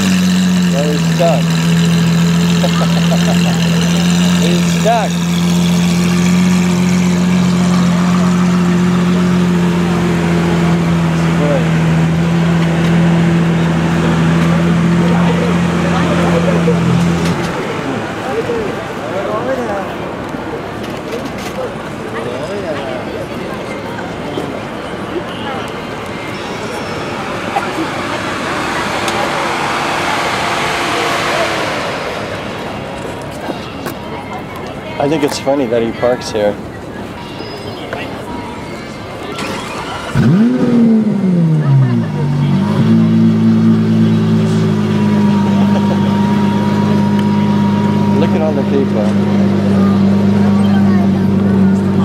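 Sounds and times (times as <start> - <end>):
vehicle passing: 0.0 - 20.2, 24.6 - 37.2, 38.1 - 52.0
car engine idling: 0.0 - 21.1, 24.1 - 52.0
crowd chatter: 0.0 - 52.0.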